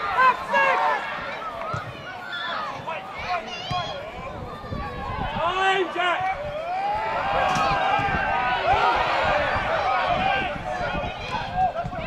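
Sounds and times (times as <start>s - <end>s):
men shouting and calling: 0.0s - 1.6s, 2.2s - 12.0s.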